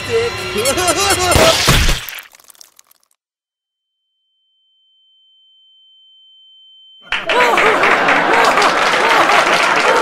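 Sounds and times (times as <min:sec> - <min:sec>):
high-pitched ringing tone: 0:03.7 - 0:07.1.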